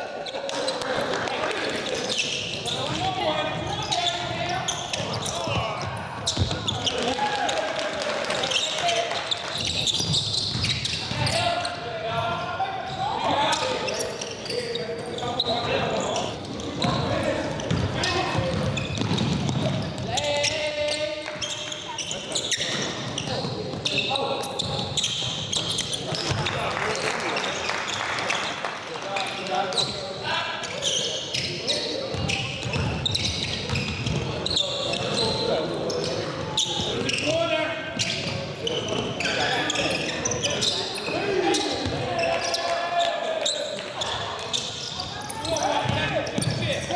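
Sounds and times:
indistinct shouting and talk: 0:00.0 - 0:46.9.

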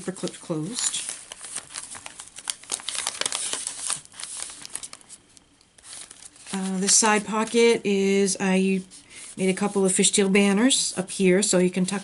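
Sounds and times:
paper pages rustling and crinkling: 0:00.0 - 0:07.8.

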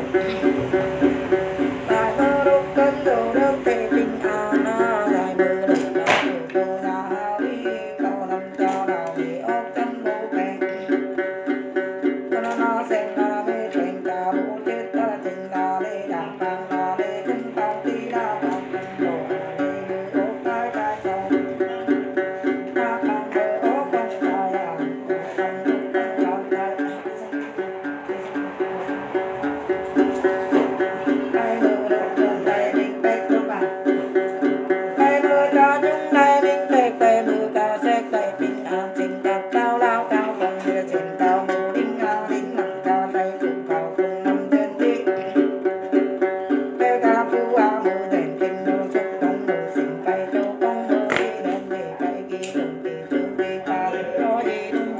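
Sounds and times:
plucked long-necked lute: 0:00.0 - 0:54.9.

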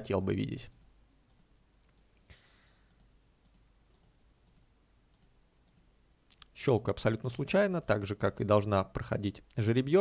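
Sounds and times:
computer mouse clicks: 0:00.7 - 0:02.2, 0:02.8 - 0:06.5.

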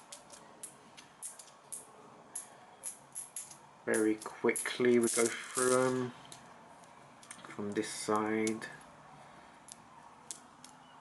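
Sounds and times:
coins clicking together: 0:00.0 - 0:06.4.

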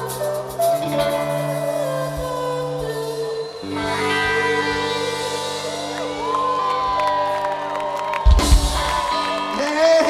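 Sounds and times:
punk song: 0:03.4 - 0:10.0
crowd cheering and whooping: 0:03.6 - 0:10.0.

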